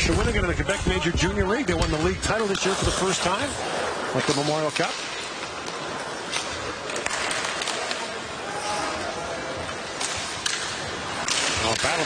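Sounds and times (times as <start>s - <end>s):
crowd and rink noise: 0.0s - 12.0s
puck clacks: 1.8s - 8.2s, 9.6s - 12.0s.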